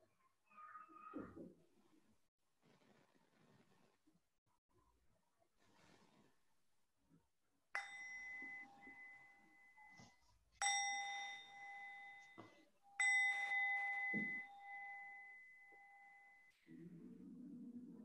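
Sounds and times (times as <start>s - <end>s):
metal meditation bell ringing: 7.8s - 16.5s.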